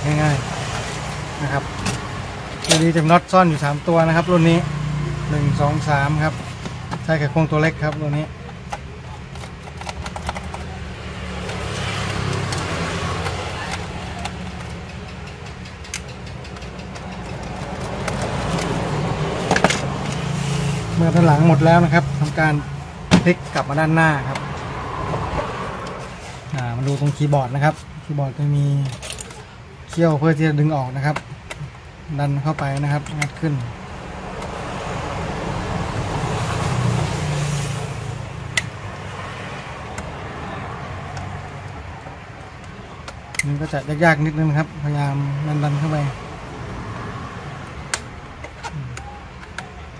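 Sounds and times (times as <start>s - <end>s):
passing motor vehicle: 0.0s - 28.2s, 32.9s - 49.9s
screwdriver clicking and scraping: 0.1s - 4.5s, 7.7s - 30.1s, 32.4s - 33.7s
sharp plastic click: 47.8s - 49.8s.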